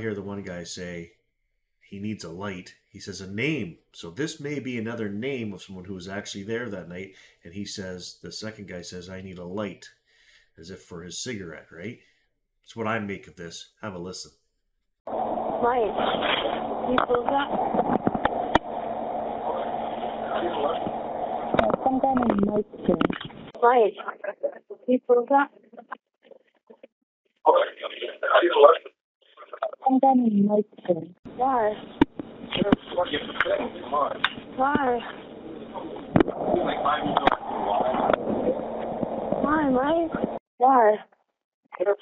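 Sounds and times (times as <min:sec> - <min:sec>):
muffled voices on phone recording: 0:15.6 - 0:24.6, 0:27.5 - 0:30.0, 0:31.4 - 0:40.4.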